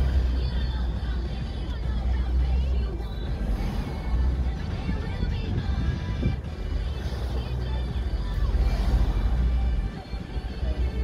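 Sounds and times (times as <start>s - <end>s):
car driving on street: 0.0s - 11.0s
faint music playing: 0.0s - 11.0s.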